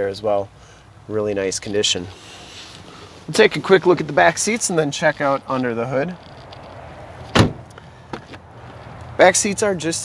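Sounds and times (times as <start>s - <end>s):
car door shutting thud: 7.3s - 7.7s.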